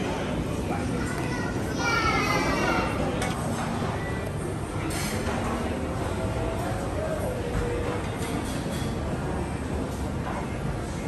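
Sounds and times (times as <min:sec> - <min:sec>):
child's high-pitched voice: 0:00.9 - 0:03.0.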